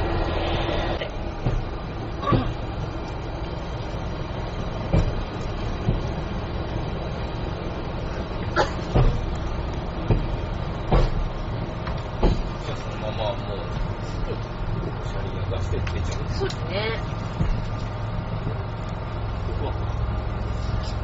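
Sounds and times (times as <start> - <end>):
engine and running drone: 0.0 - 21.0
wheels knocking on track: 0.9 - 20.3.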